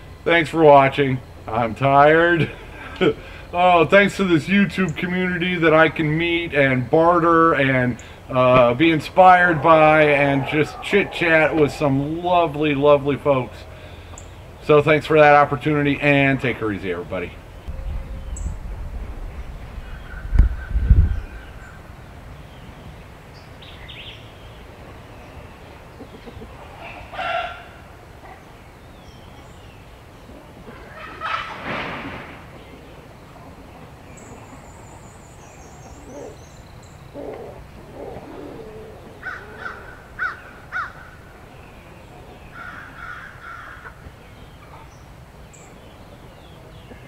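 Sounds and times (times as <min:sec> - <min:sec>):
small birds chirping: 0:00.0 - 0:31.4, 0:32.5 - 0:47.0
low thumps: 0:17.6 - 0:22.0
poultry calling: 0:25.5 - 0:29.2, 0:30.2 - 0:31.7, 0:32.7 - 0:44.9.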